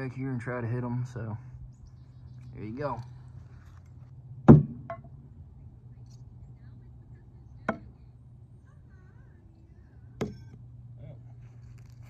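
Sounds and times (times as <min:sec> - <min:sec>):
knife striking wood target: 0:04.5 - 0:05.1.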